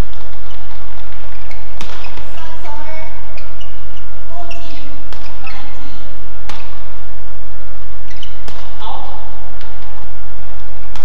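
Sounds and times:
racket smacking shuttlecock: 0.0 - 2.5, 3.2 - 5.8, 6.4 - 7.0, 8.0 - 8.8, 9.6 - 10.0
steady low hum: 0.0 - 11.0
shoes squeaking on court floor: 0.1 - 6.8, 8.1 - 8.8.

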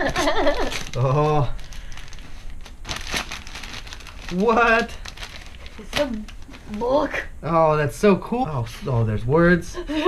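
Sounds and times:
wrapping paper tearing and crumpling: 0.4 - 6.9.

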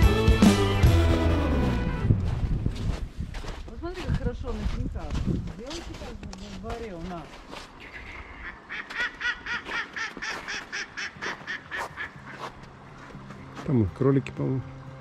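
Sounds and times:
duck quacking: 7.8 - 12.6.

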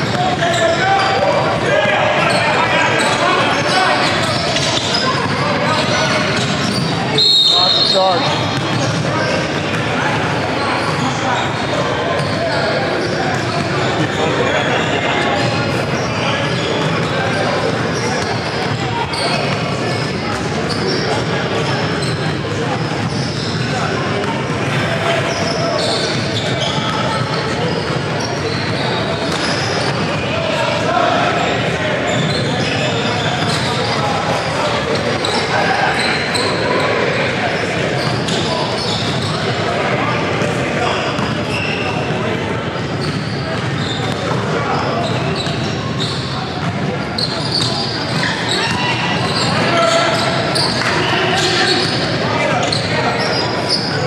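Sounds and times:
crowd chatter in echoing hall: 0.0 - 54.0
referee's whistle: 6.7 - 8.4.

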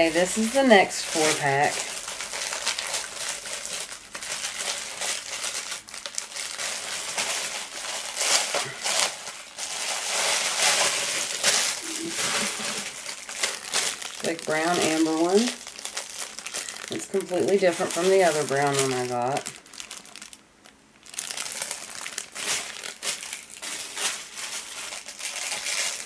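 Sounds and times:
plastic bags crinkling: 0.0 - 26.0.

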